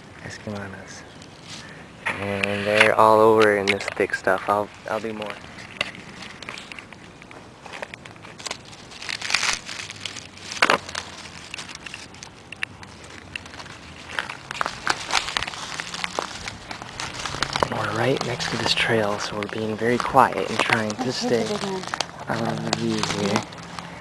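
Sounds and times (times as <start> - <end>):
dry leaves rustling and crunching: 0.5 - 24.0.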